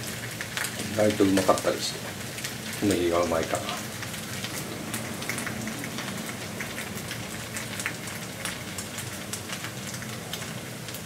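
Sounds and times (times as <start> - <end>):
food sizzling in oil: 0.0 - 11.0.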